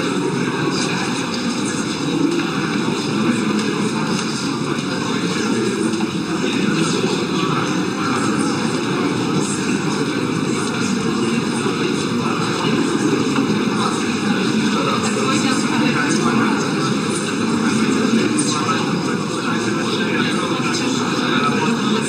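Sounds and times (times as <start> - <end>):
steady rushing background noise: 0.0 - 22.0.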